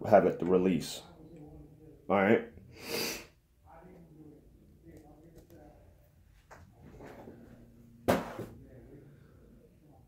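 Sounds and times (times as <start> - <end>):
knocks on hard surface: 8.1 - 8.5.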